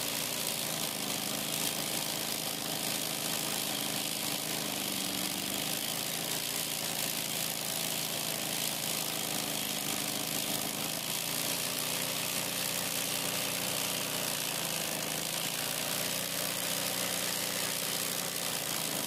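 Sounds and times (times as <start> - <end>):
embroidery sewing machine running: 0.0 - 19.0.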